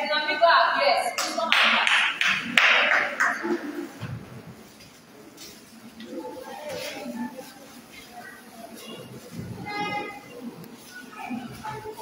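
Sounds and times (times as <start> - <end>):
people clapping: 1.1 - 4.0.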